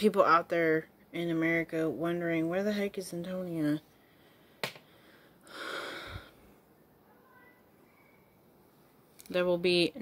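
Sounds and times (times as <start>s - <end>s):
person breathing out: 4.9s - 6.5s.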